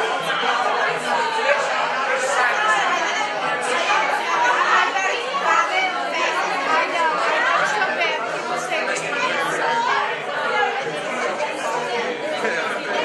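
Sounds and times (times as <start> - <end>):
crowd talking: 0.0 - 13.0.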